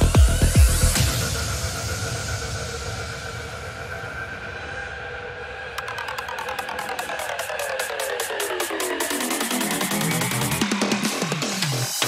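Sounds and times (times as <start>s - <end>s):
fast pulsing synth sequence: 5.6s - 12.0s.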